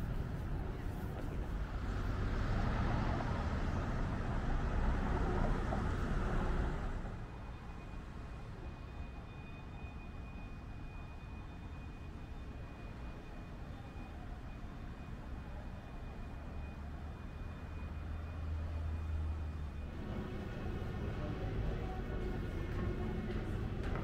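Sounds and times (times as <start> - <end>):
cars passing: 0.0 - 7.3, 16.4 - 24.0
traffic hum: 0.0 - 8.6, 12.0 - 24.0.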